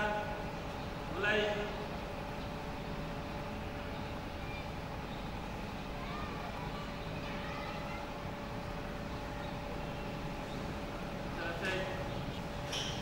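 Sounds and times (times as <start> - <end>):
faint constant hum: 0.0 - 13.0
faint distant voices: 0.0 - 13.0.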